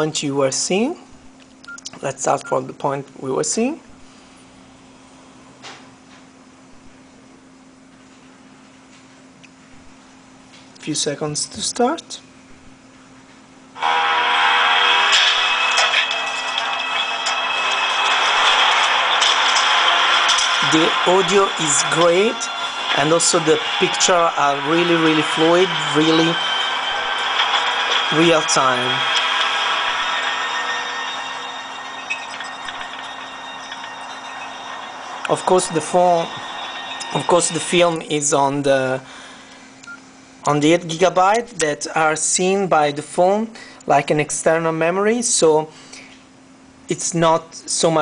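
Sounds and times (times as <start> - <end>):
film soundtrack on phone speaker: 13.8 - 42.1.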